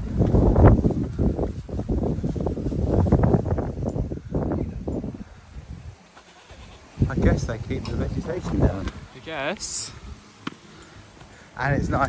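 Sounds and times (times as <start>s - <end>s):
wind buffeting microphone: 0.0s - 6.0s, 6.6s - 10.2s, 11.0s - 12.0s.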